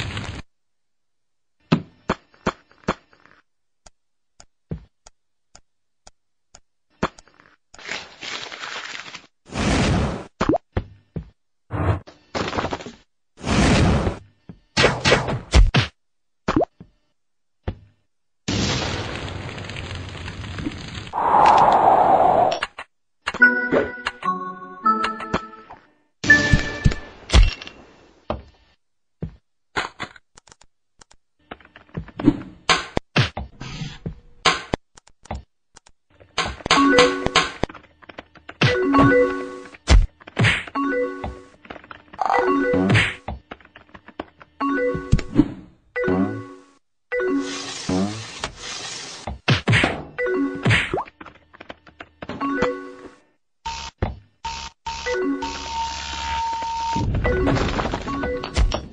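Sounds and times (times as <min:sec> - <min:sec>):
cartoon thuds and whacks: 0:14.8 - 0:16.7, 0:32.2 - 0:33.5, 0:39.8 - 0:40.8, 0:42.8 - 0:43.3, 0:49.3 - 0:51.1
noisy rushing burst: 0:21.2 - 0:22.6
short rising zip: 0:21.2 - 0:22.6.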